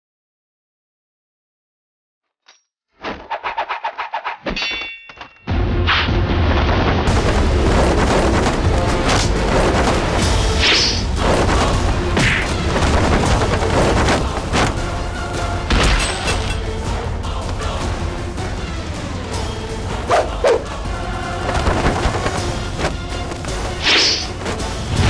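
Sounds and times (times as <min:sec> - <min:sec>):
metallic ring: 0:04.5 - 0:05.5
action music: 0:05.5 - 0:25.0
deep rumble: 0:05.6 - 0:15.7.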